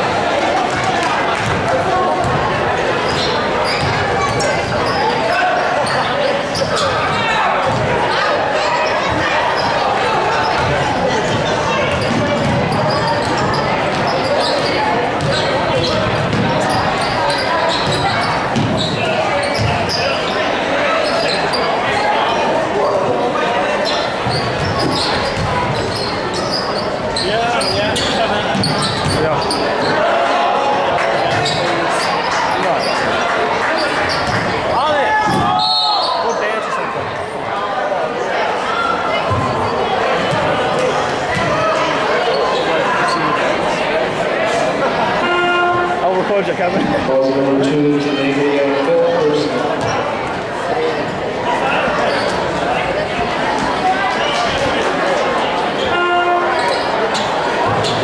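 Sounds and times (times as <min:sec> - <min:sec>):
crowd talking and calling out: 0:00.0 - 0:58.0.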